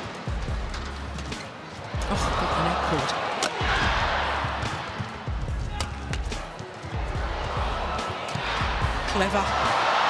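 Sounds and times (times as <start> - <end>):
arena crowd noise: 0.0 - 10.0
racquets hitting shuttlecock: 3.3 - 3.7.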